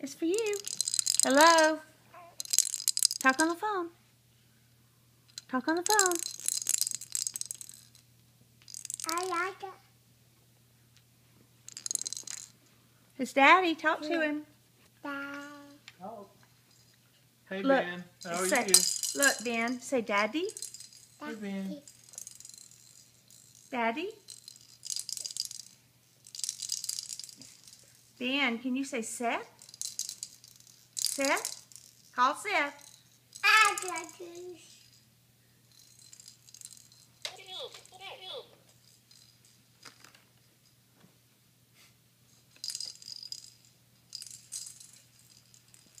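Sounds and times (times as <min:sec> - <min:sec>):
toy rattling: 0:00.1 - 0:03.8, 0:05.3 - 0:09.7, 0:11.7 - 0:12.6, 0:15.1 - 0:15.8, 0:16.6 - 0:17.0, 0:18.2 - 0:28.4, 0:29.0 - 0:35.1, 0:35.7 - 0:40.2, 0:42.3 - 0:46.0.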